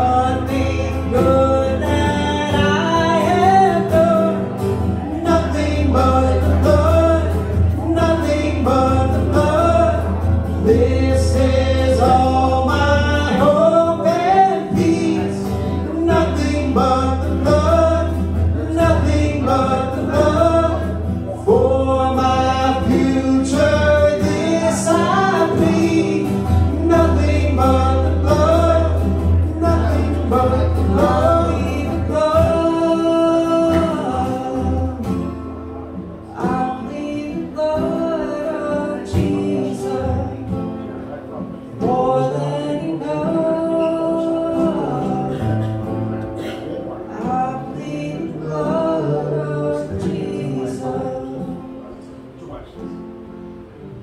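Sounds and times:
men singing gospel song: 0.0s - 35.2s, 36.4s - 40.5s, 41.8s - 45.8s, 47.1s - 51.7s
acoustic guitars: 0.0s - 54.0s.

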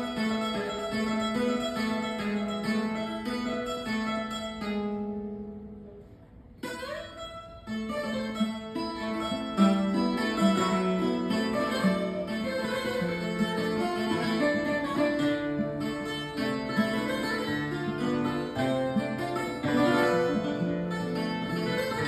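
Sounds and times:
two guitars playing: 0.0s - 22.0s.

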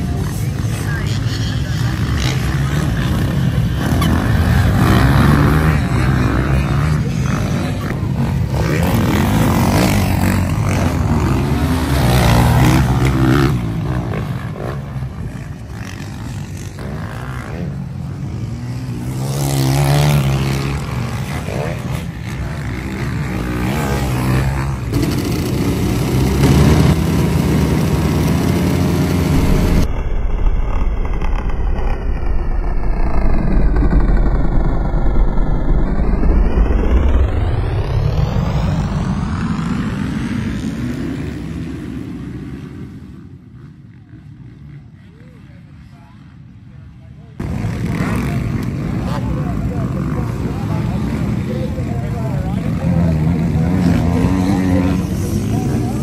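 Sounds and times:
motocross bike engines revving: 0.0s - 56.0s
low rumble: 24.4s - 40.5s.

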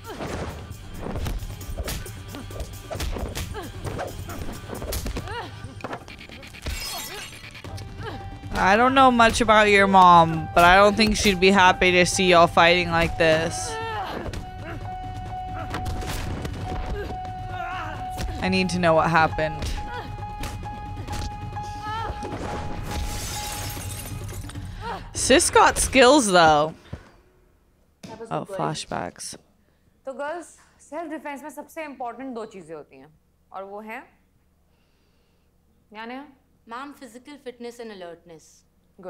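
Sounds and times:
background music: 0.0s - 27.5s.

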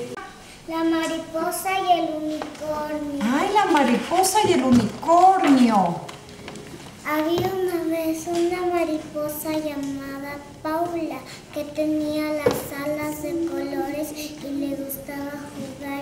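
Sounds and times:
child singing: 7.1s - 16.0s.

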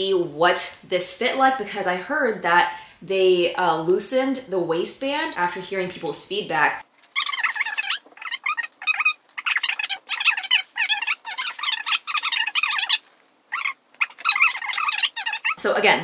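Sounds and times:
sped-up high-pitched voice chatter: 7.2s - 13.0s, 13.6s - 15.6s.

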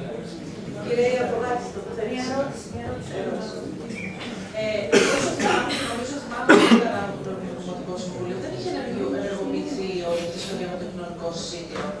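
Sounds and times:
person coughing: 4.9s - 7.0s.

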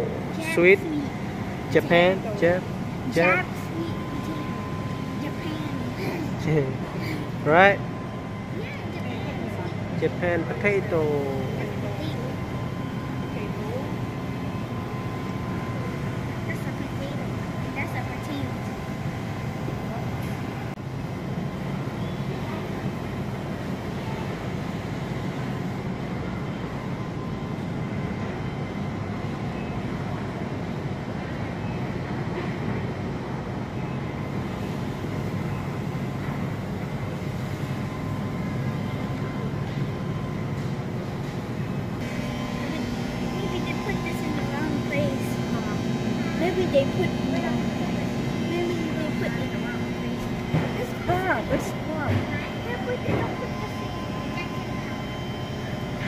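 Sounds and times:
faint steady tones: 0.0s - 32.2s, 33.3s - 56.0s
constant low hum: 0.0s - 56.0s.

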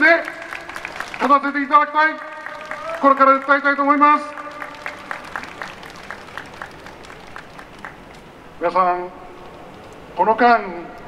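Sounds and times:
scattered hand claps: 0.0s - 8.3s
crowd noise: 0.0s - 10.2s.

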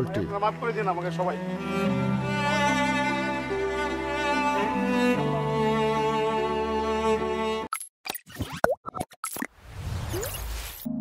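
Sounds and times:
cello-led string chord: 0.0s - 7.6s.

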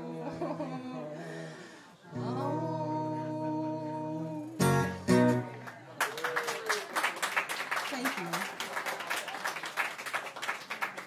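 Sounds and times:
acoustic guitar chords: 2.1s - 5.8s
people clapping: 5.4s - 11.0s.

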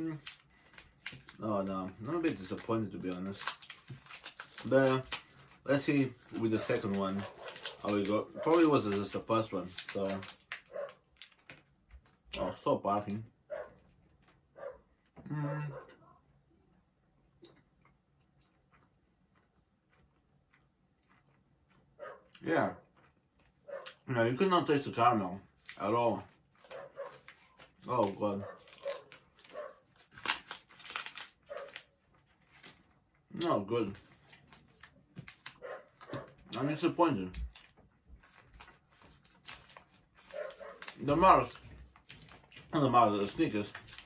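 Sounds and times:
foil wrapper crinkling: 0.0s - 12.4s, 25.5s - 44.0s.

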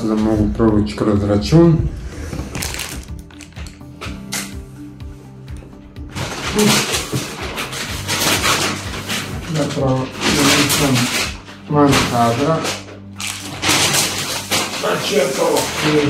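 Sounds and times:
soft background music: 0.0s - 16.0s
shopping bags rustling: 1.9s - 3.8s, 6.0s - 16.0s.

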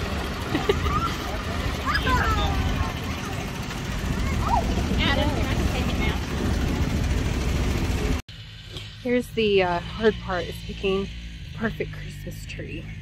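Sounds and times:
low engine rumble: 0.0s - 13.0s.

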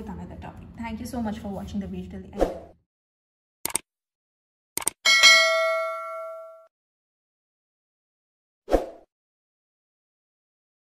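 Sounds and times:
notification bell ding: 5.1s - 6.7s.

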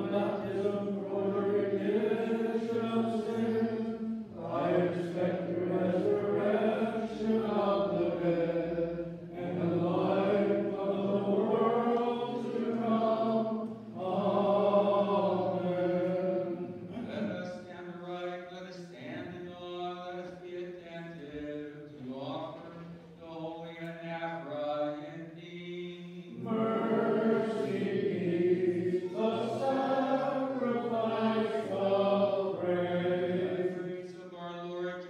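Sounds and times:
group of voices singing: 0.0s - 17.7s, 25.5s - 35.0s.

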